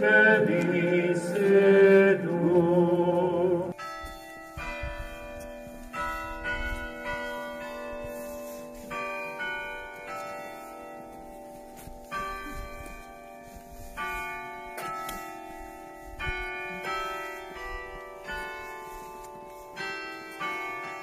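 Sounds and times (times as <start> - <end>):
church bells ringing: 0.0 - 21.0.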